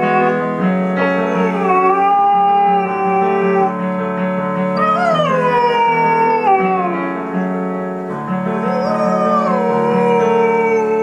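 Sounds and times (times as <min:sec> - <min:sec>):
dog howling: 0:00.0 - 0:00.5, 0:01.2 - 0:03.8, 0:04.8 - 0:07.2, 0:08.6 - 0:11.0
piano chords: 0:00.0 - 0:11.0.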